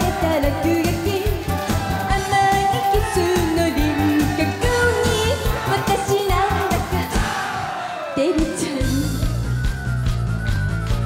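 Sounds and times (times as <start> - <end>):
pop band backing with beat: 0.0 - 11.0.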